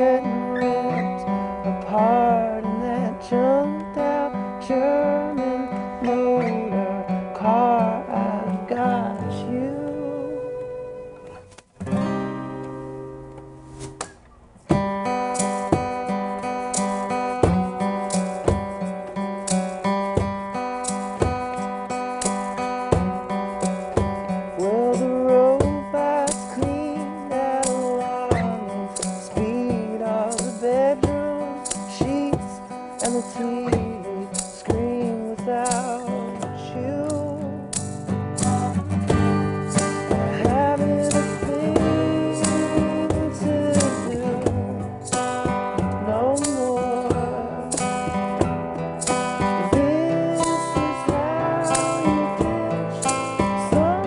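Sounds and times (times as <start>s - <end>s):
person singing: 0.0s - 11.3s, 24.5s - 37.8s, 38.4s - 54.0s
strummed acoustic guitar: 0.0s - 54.0s.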